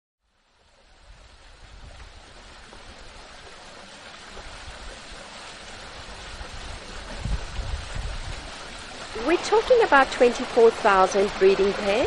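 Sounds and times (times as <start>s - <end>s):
steady rushing outdoor noise: 1.0s - 12.0s.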